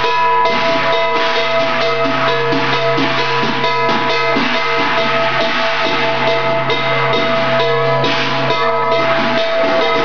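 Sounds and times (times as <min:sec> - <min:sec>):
loud metallic strike: 0:00.0 - 0:10.0
percussion music with drums: 0:00.0 - 0:10.0
sustained ringing tone: 0:00.0 - 0:10.0.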